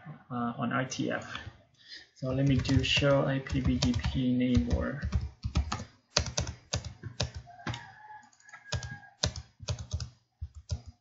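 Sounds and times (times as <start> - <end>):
typing on computer keyboard: 2.4 - 11.0.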